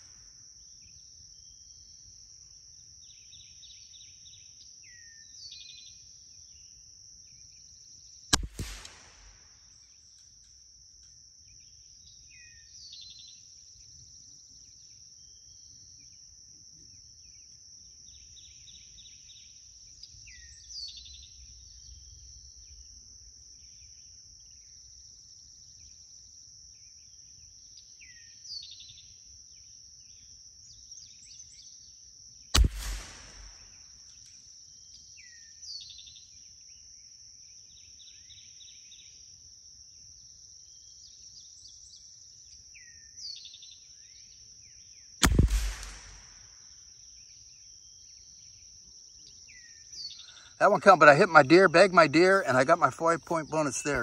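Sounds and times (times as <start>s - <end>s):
rifle shots: 8.4s - 9.5s, 32.6s - 33.8s, 45.2s - 46.4s
bird falling call: 32.6s - 33.6s.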